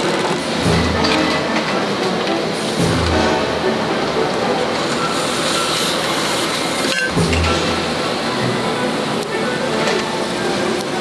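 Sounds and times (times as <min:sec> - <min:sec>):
factory machine noise: 0:00.0 - 0:11.0.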